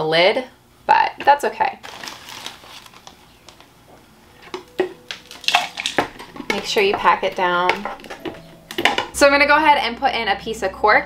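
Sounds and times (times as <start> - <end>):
plastic jar tapping on wood: 4.5 - 9.2
plastic jar knocking on tray: 5.9 - 9.2.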